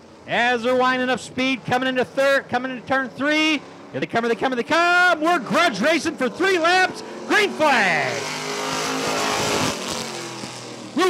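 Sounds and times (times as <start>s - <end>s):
race car engines accelerating: 0.0s - 11.0s.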